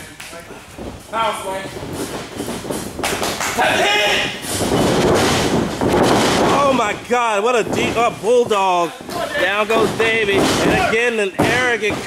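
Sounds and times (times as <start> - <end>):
wrestlers thudding on mat: 0.6 - 12.0.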